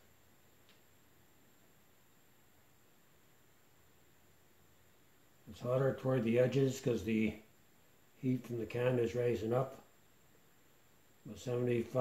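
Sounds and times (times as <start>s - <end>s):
faint tick: 0.6s - 0.8s.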